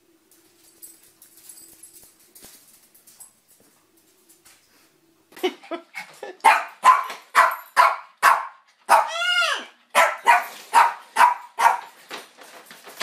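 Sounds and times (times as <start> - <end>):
dog barking: 6.4 - 9.3, 9.9 - 11.9
dog yelping: 6.5 - 11.8.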